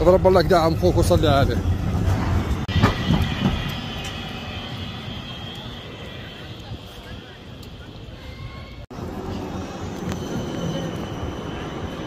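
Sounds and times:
tram passing on rails: 0:00.0 - 0:12.0.

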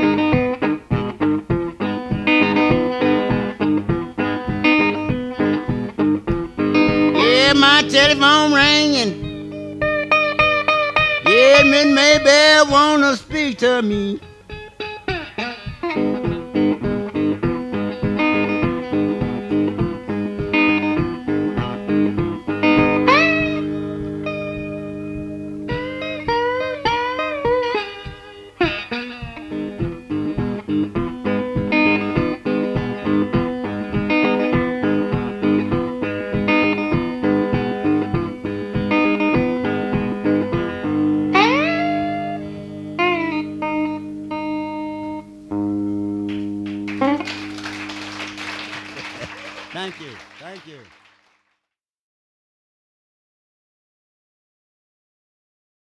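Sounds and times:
electric blues guitar riff: 0:00.0 - 0:51.0.

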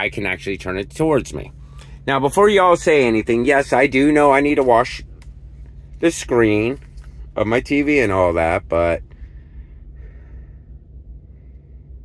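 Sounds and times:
truck cab rumble: 0:00.0 - 0:12.0.

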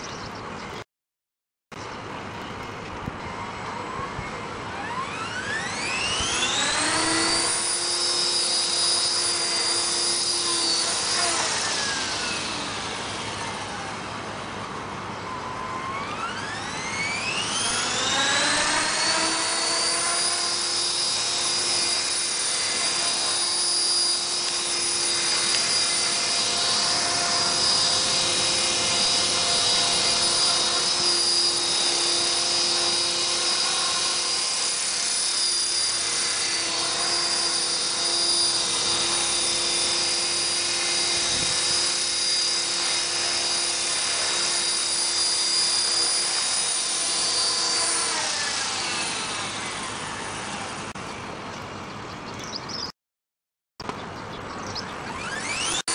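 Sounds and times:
helicopter motor whine: 0:01.8 - 0:52.8, 0:53.9 - 0:55.9.

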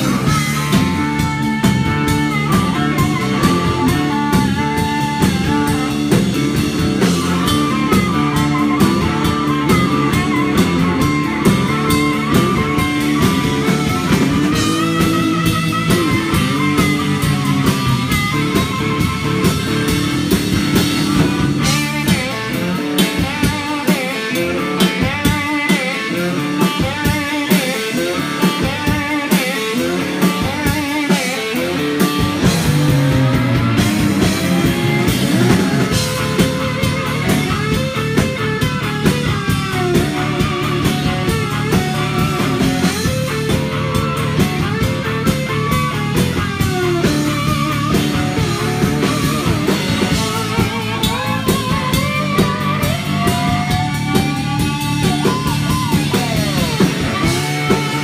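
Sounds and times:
amplified harmonica: 0:00.0 - 0:58.0
drum kit: 0:00.0 - 0:58.0
electric guitar: 0:00.0 - 0:58.0.

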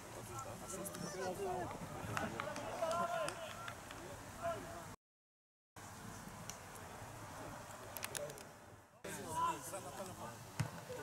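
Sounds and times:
football being kicked: 0:10.6 - 0:10.8.

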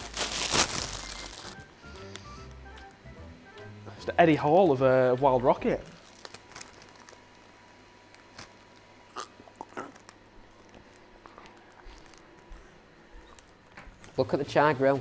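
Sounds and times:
person chewing leaves: 0:06.0 - 0:14.1.

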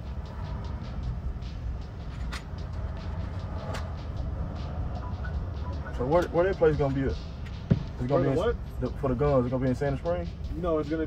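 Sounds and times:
vehicle rumbling on road: 0:00.0 - 0:11.0.

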